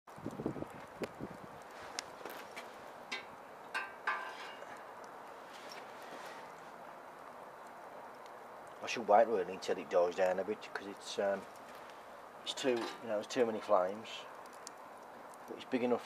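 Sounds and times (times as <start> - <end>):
wood fire crackling and hissing: 0.1 - 16.0
knocks and scrapes on metal grill: 3.1 - 4.8.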